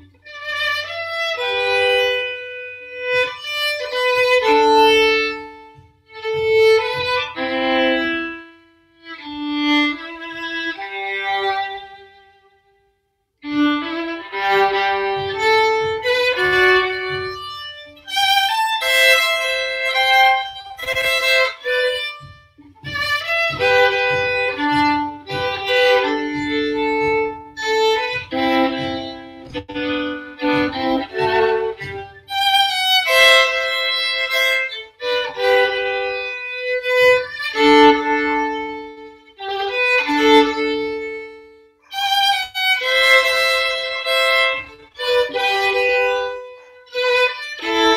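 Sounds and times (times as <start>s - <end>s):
solo violin melody: 0.0s - 47.9s.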